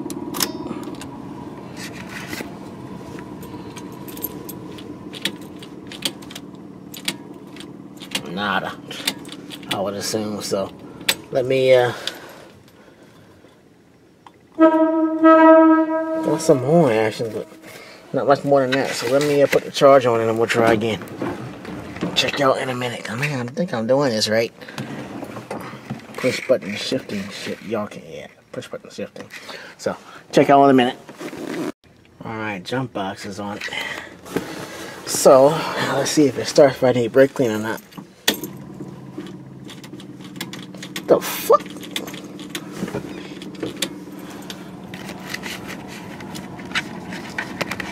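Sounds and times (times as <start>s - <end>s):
low electrical hum with buzz: 0.0s - 29.2s.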